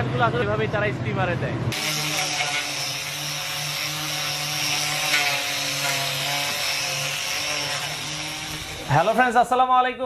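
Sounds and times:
angle grinder motor whine: 0:01.7 - 0:09.2
sanding pad hissing on wood: 0:01.8 - 0:09.2.

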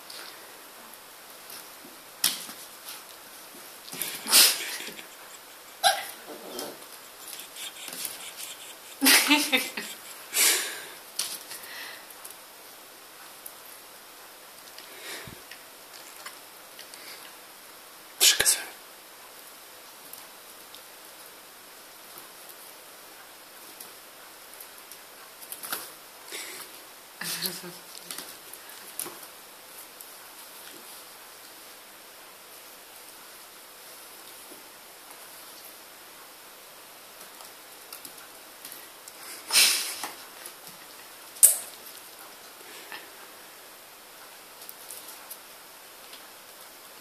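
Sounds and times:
steady low hiss: 0:00.0 - 0:47.0
puppy barking: 0:05.8 - 0:06.4.

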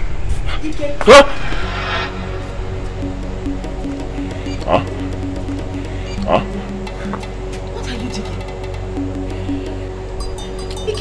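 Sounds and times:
low background music: 0:01.4 - 0:11.0.

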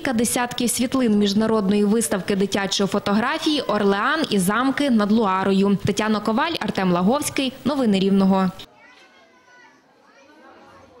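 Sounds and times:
children chattering: 0:08.6 - 0:11.0.

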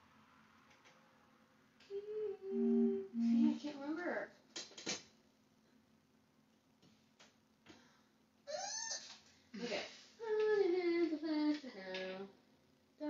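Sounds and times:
woman humming: 0:01.8 - 0:03.7
short gliding vocal sound: 0:01.9 - 0:03.6.

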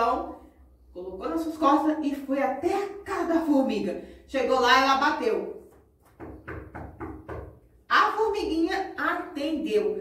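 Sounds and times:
hand knocking on hard surface: 0:05.7 - 0:07.7.

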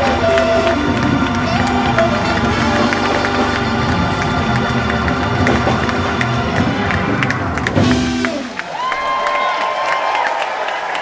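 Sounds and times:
organ sustaining chords: 0:00.0 - 0:08.6
live band music: 0:00.0 - 0:09.0
crowd cheering: 0:00.0 - 0:11.0.

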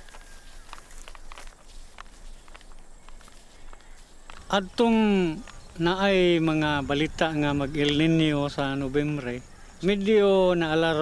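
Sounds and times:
footsteps crackling through stubble: 0:00.0 - 0:11.0.

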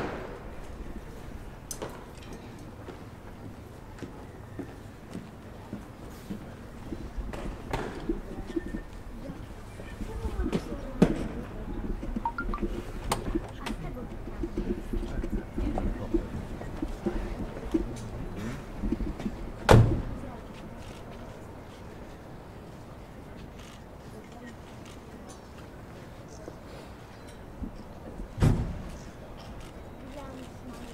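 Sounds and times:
crowd talking: 0:02.4 - 0:30.9.

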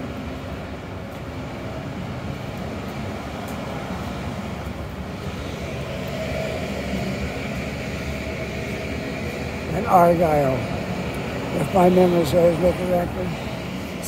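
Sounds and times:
faint steady whine: 0:00.0 - 0:14.0
street traffic hum: 0:00.0 - 0:14.0.

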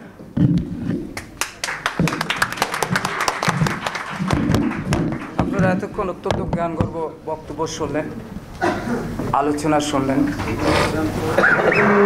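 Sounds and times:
crowd clapping: 0:01.2 - 0:05.9.

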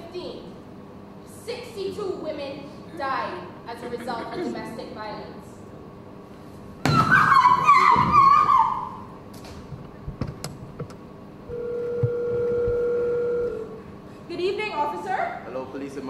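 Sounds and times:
high wavering scream: 0:06.8 - 0:09.1
telephone ringing tone: 0:11.5 - 0:13.8.

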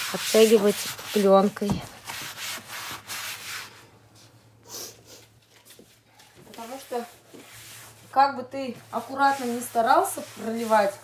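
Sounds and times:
sponge scrubbing plastic windowsill: 0:00.0 - 0:03.8, 0:06.5 - 0:11.0.

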